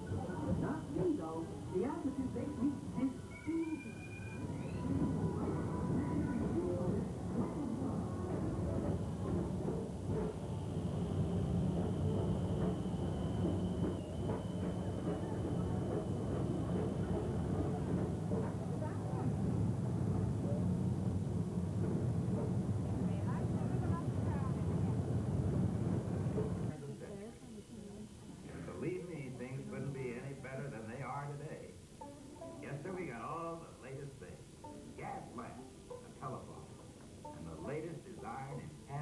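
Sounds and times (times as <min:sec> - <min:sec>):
people's voices: 0:00.0 - 0:21.2, 0:22.6 - 0:31.6
ride car humming on track: 0:04.3 - 0:26.7
thin high whine: 0:08.8 - 0:17.8.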